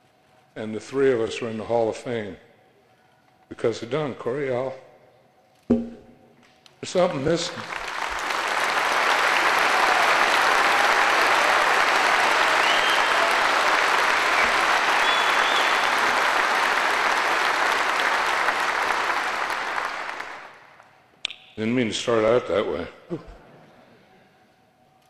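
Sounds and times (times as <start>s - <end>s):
audience applauding: 7.1s - 20.8s.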